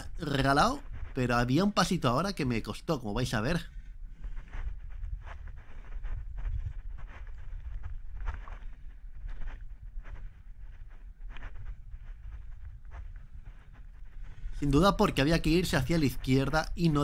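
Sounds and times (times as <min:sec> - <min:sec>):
scuffs and rustles on rock: 0:00.0 - 0:02.6, 0:03.4 - 0:17.0
wind rumble on microphone: 0:03.7 - 0:15.5.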